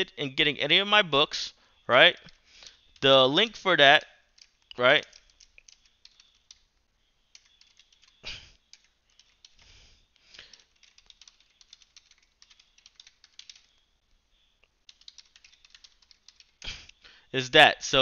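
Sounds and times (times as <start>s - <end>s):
typing on computer keyboard: 2.2s - 6.7s, 7.3s - 13.8s, 14.8s - 17.0s.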